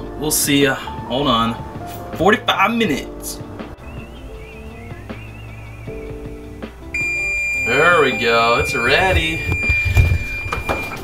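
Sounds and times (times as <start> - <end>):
soft background music: 0.0 - 11.0
oven timer high-pitched tone: 7.0 - 11.0.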